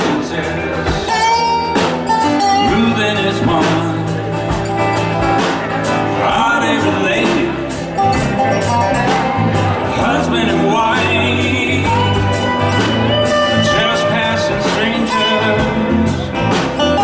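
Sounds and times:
person singing: 0.0s - 4.8s, 6.0s - 17.0s
country band playing: 0.0s - 17.0s.

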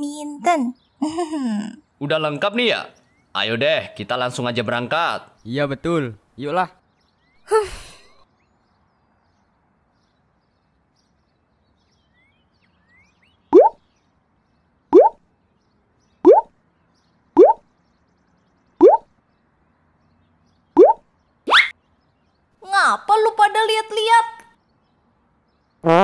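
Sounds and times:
cartoon bloop pops: 13.6s - 13.8s, 15.0s - 15.2s, 16.3s - 16.5s, 17.4s - 17.6s, 18.8s - 19.1s, 20.8s - 21.7s.

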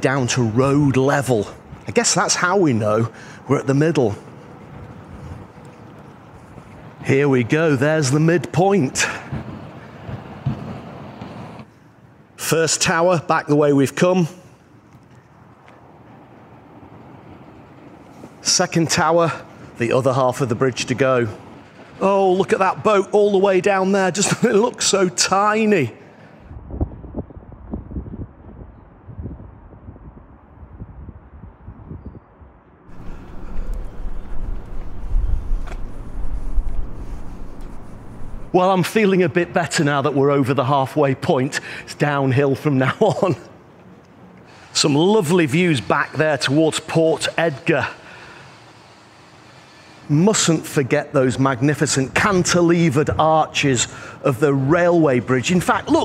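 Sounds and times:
road traffic: 0.0s - 26.6s, 32.9s - 56.0s
wind on microphone: 4.6s - 7.0s, 26.4s - 38.6s.

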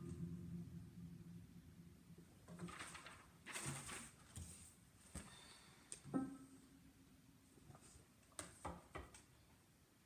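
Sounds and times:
paper rustling: 2.5s - 5.3s.

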